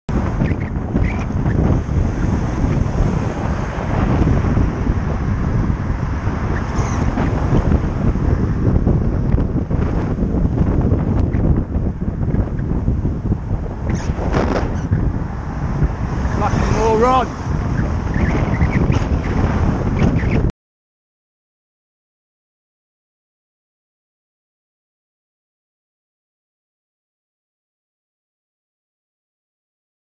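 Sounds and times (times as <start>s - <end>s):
wind buffeting microphone: 0.1s - 20.5s
cars overtaking: 13.9s - 18.7s.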